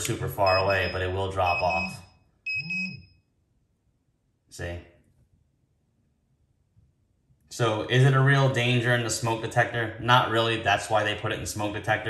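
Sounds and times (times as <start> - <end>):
high-pitched alarm beep: 0.4 - 3.2.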